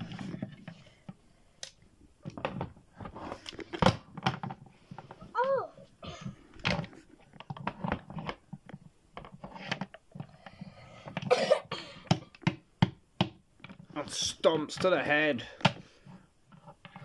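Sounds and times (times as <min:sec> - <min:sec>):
cough-like mouth noises: 0:11.2 - 0:11.8.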